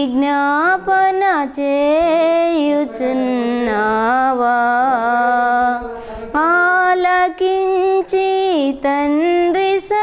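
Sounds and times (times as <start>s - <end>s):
woman singing devotional song: 0.0s - 10.0s.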